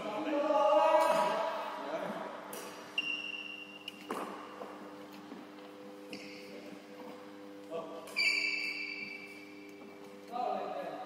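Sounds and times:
high ringing ping: 3.0s - 4.0s, 8.1s - 9.6s.

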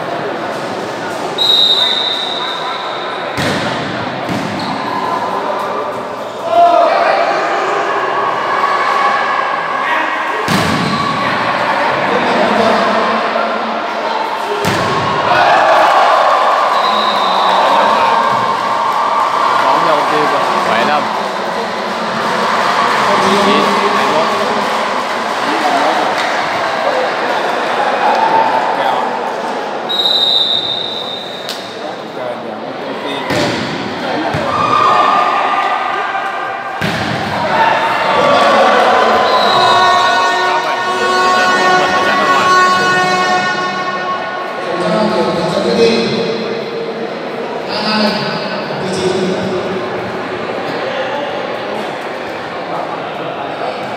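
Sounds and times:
murmur of voices: 0.0s - 53.9s
short high whistle blast: 1.4s - 2.9s, 29.9s - 31.5s.

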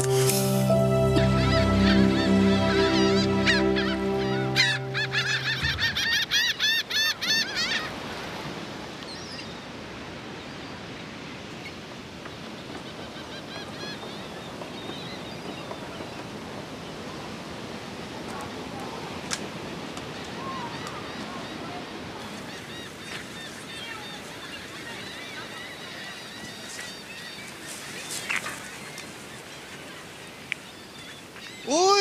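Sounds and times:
sustained music chord: 0.0s - 6.5s
birds calling: 0.0s - 8.0s
steady outdoor hiss: 0.0s - 32.0s.

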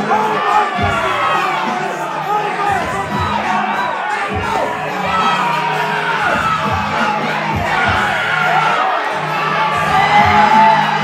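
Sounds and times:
crowd yelling and cheering: 0.0s - 11.0s
music with bass beat: 0.0s - 11.0s.

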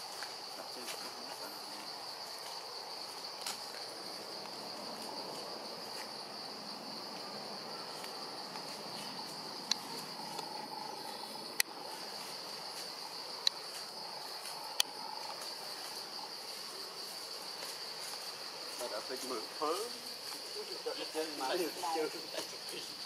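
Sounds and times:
insect chorus drone: 0.0s - 23.0s.

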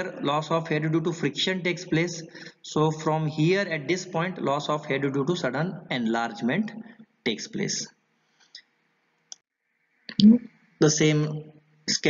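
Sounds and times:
man speaking: 0.0s - 7.9s, 10.8s - 12.0s.

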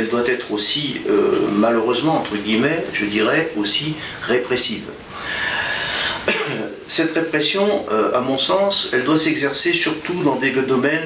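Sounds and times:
person coughing: 6.2s - 6.8s.

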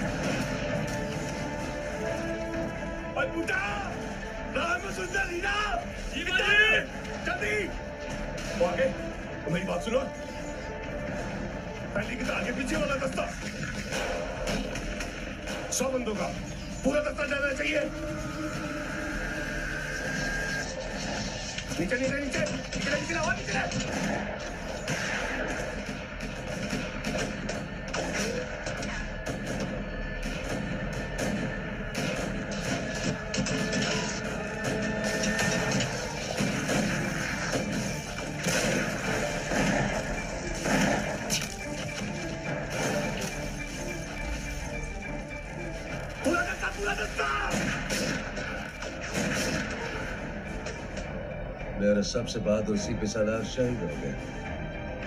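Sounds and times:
background music: 0.0s - 55.0s.

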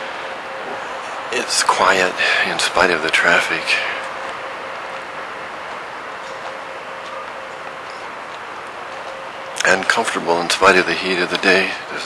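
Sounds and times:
distant city traffic hiss: 0.0s - 12.0s
faint steady hum: 0.0s - 12.0s.

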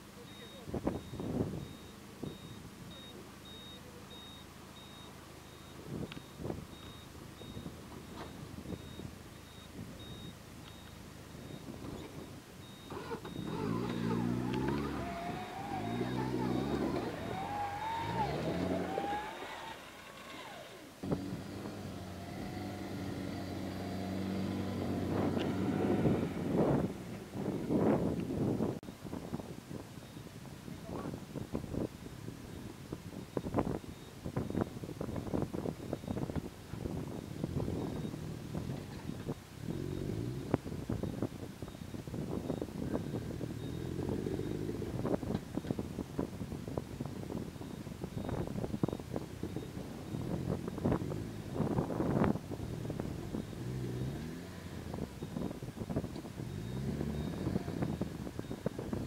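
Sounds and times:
off-road vehicle engine revving: 11.4s - 28.8s, 36.8s - 45.8s, 47.6s - 59.0s.

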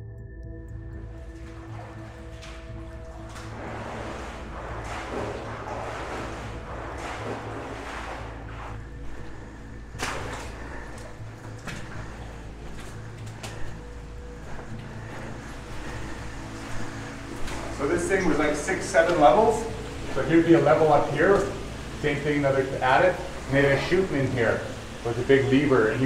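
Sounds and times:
background music tones: 0.0s - 26.0s
steady low hum: 0.0s - 26.0s
footsteps wading through water: 0.9s - 26.0s.

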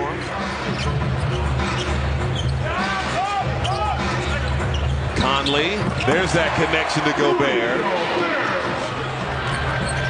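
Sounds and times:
shoe squeaks: 0.6s - 2.7s, 3.6s - 6.2s, 9.4s - 10.0s
players' voices: 2.6s - 10.0s.

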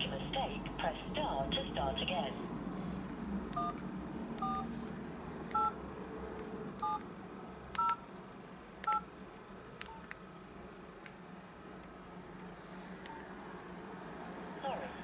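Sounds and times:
touch-tone keypad beeps: 3.6s - 3.8s, 4.4s - 4.7s, 6.8s - 7.0s, 7.8s - 8.0s.

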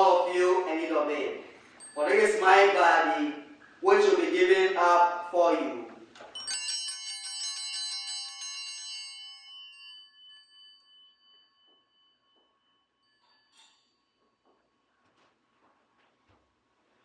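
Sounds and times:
small bells ringing: 1.4s - 3.6s, 6.2s - 15.1s.

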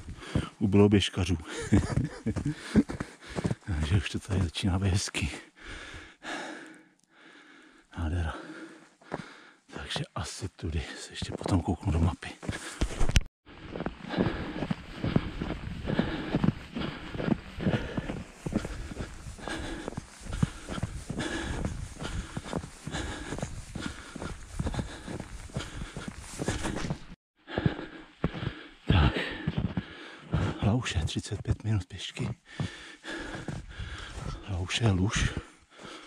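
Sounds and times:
runner breathing: 0.0s - 0.6s, 1.4s - 4.5s, 5.2s - 11.6s, 12.2s - 30.8s, 32.3s - 36.0s
footsteps on snow: 0.0s - 5.4s, 8.4s - 36.0s.

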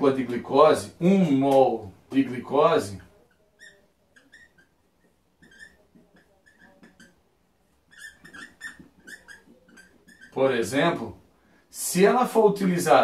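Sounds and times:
marker squeaking on whiteboard: 2.2s - 11.0s.

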